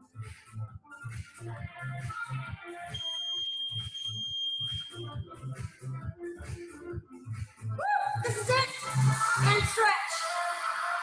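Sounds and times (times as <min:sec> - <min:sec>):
workout music with steady beat: 0:00.0 - 0:11.0
long high electronic beep: 0:03.0 - 0:05.0.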